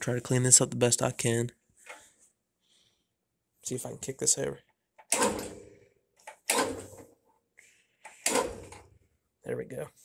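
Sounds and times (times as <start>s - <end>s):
engine cranking: 5.1s - 5.6s.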